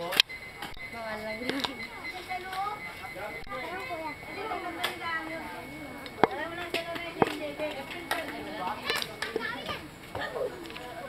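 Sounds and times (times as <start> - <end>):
people chatting and calling: 0.0 - 11.0.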